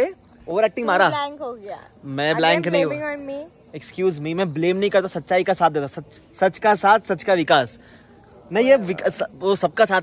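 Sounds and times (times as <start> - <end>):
crickets chirring: 0.0 - 10.0
man speaking: 2.0 - 3.0, 8.5 - 10.0.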